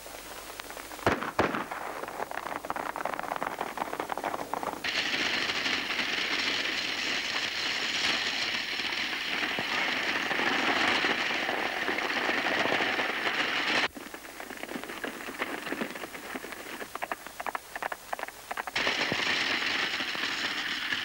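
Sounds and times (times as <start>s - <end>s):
galloping hoofbeats: 0.0s - 21.0s
rattling wheels: 2.1s - 21.0s.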